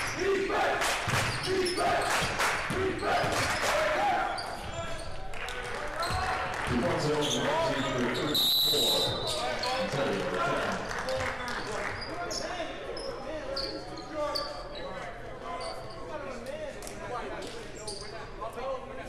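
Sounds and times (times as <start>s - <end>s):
chattering crowd: 2.7s - 19.0s
referee's whistle blast: 8.4s - 9.3s.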